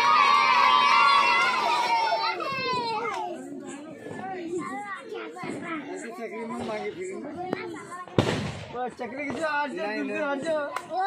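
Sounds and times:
children chattering: 0.0 - 11.0
firecracker bang: 8.1 - 9.5.

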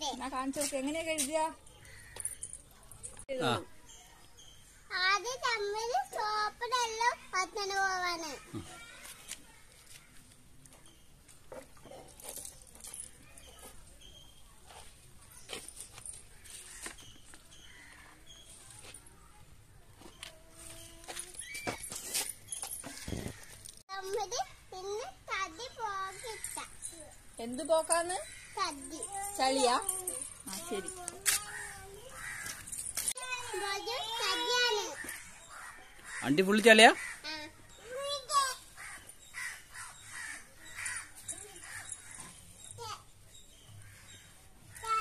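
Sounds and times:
crow cawing: 37.0 - 37.5, 38.8 - 42.2.

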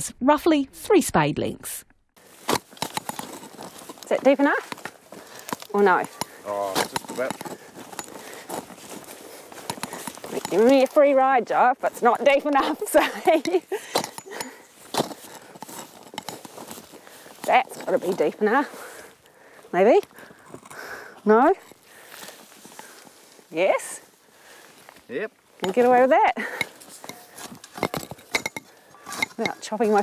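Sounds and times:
spade crunching and scraping: 2.2 - 23.7, 25.6 - 30.0.

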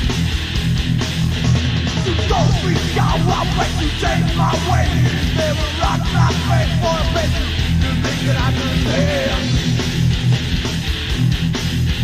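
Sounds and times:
thrash metal band playing: 0.0 - 12.0.

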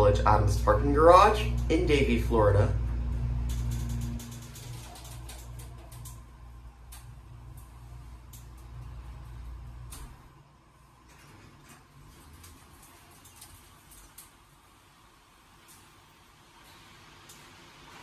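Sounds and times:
elevator pump motor humming: 0.0 - 11.1
elevator door sliding open: 0.7 - 10.4.

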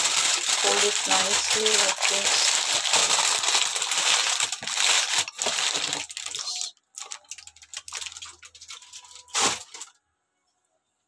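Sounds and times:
aluminium foil crinkling: 0.0 - 10.0.

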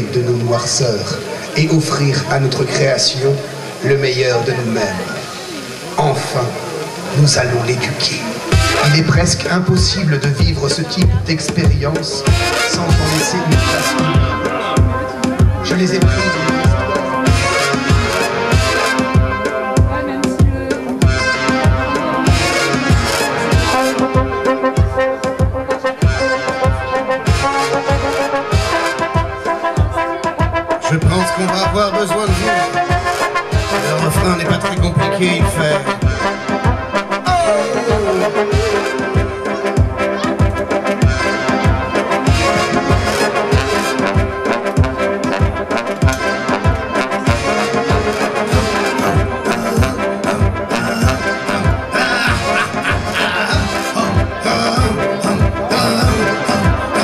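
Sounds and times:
electro swing band playing: 0.0 - 57.0
trombone holding notes: 0.0 - 57.0
steady kick drum beat: 8.5 - 57.0.

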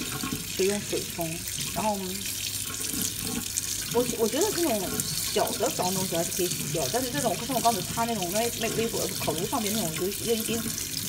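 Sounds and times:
tap water splashing into sink: 0.0 - 11.0.

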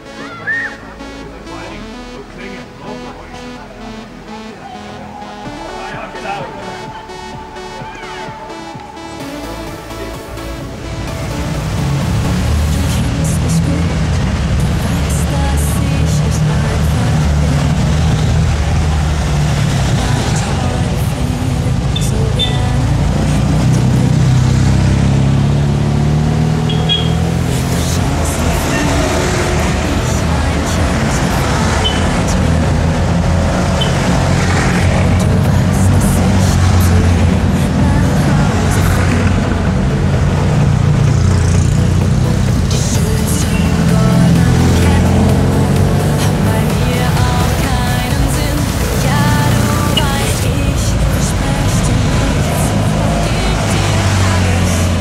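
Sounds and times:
background music: 0.0 - 55.0
small car engines passing: 0.0 - 55.0.

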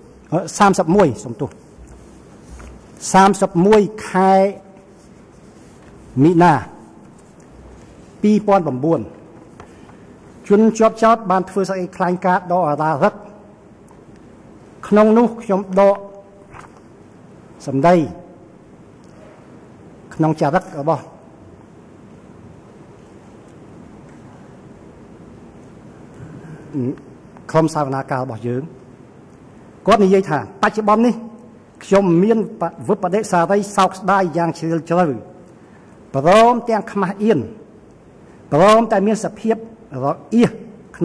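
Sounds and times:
faint low noise: 0.0 - 41.0
man speaking into a microphone: 0.1 - 1.8, 3.0 - 4.9, 6.1 - 7.0, 8.2 - 9.3, 10.4 - 13.5, 14.8 - 16.4, 17.6 - 18.4, 20.1 - 21.3, 26.6 - 28.8, 29.8 - 35.4, 36.1 - 37.6, 38.5 - 41.0.

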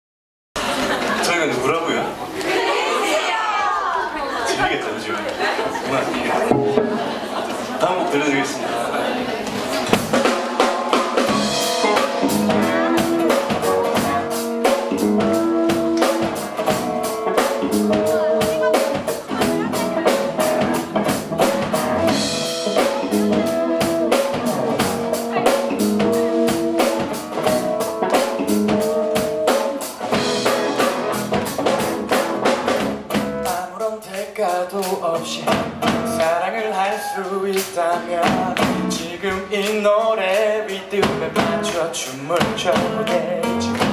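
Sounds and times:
drum kit beat: 6.4 - 7.8, 9.5 - 43.9
strummed acoustic guitar: 6.5 - 7.4
electric guitar: 9.9 - 33.5
electric bass: 11.2 - 33.5, 42.8 - 43.9.

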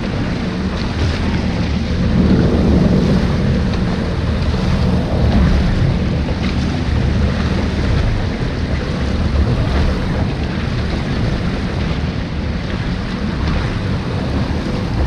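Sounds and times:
jet ski engine drone: 0.0 - 15.0
water rushing against hull: 0.0 - 15.0
wind buffeting microphone: 0.0 - 15.0.

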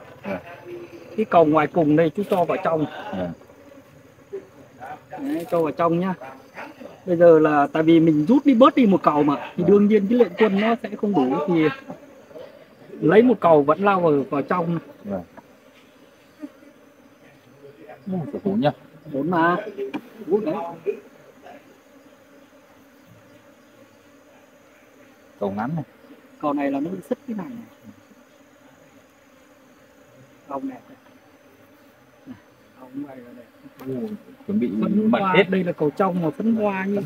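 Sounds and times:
honeybee colony buzzing: 0.0 - 37.0.

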